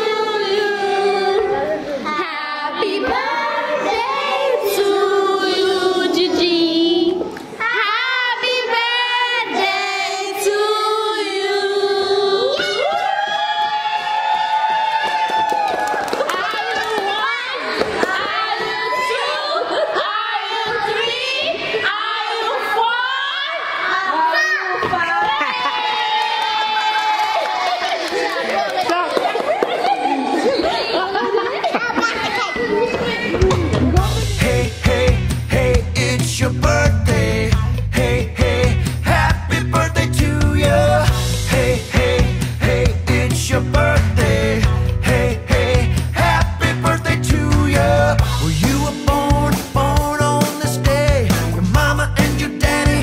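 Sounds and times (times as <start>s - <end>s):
women singing unaccompanied: 0.0s - 12.8s
young children chattering: 30.0s - 33.9s
music with heavy bass beat: 33.5s - 53.0s.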